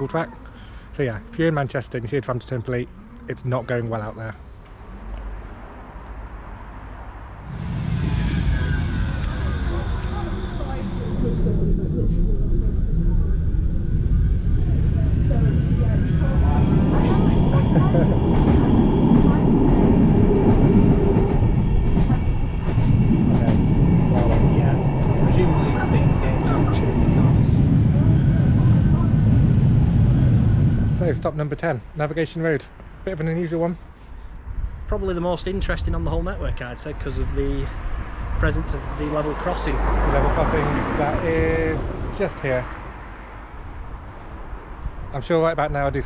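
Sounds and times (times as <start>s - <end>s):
tram wheels rumbling on rail: 6.9s - 32.2s, 35.1s - 46.0s.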